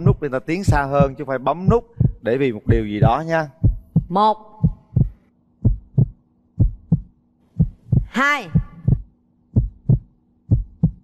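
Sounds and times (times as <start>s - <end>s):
heartbeat thumps: 0.0s - 11.0s.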